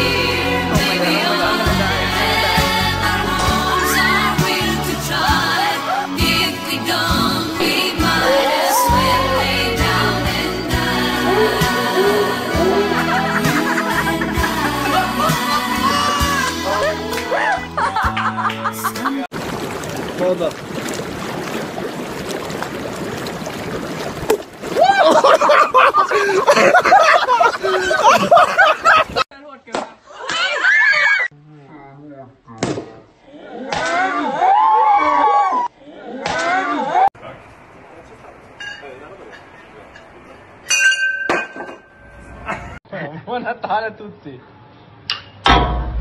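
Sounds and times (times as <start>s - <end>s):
hot tub jets bubbling: 19.3s - 27.1s
glass clinking and ringing: 38.6s - 42.3s
sharp knock: 45.4s - 46.0s.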